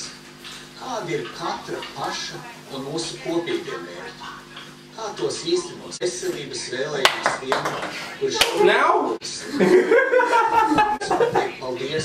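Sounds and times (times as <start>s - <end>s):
people laughing: 9.3s - 11.7s.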